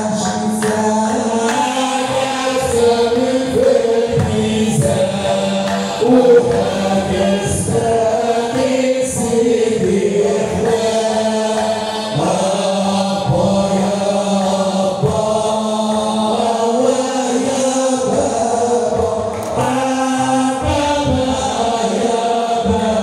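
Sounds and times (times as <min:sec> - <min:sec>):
men chanting a hymn: 0:00.0 - 0:23.0.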